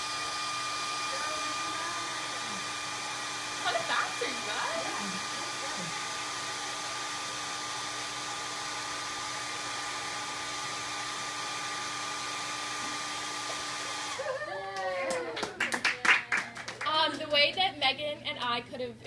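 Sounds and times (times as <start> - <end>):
hair dryer blowing: 0.0 - 14.9.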